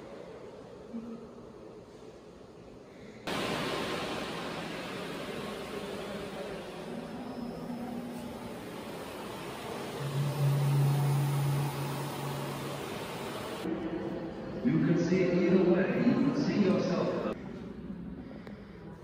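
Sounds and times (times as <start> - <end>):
low steady hum: 2.9 - 19.0
blower rushing air: 3.3 - 13.7.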